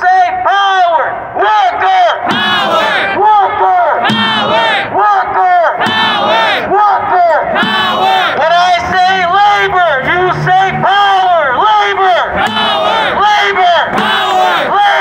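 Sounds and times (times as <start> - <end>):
lead voice through megaphone: 0.0 - 15.0
crowd chanting: 1.4 - 15.0.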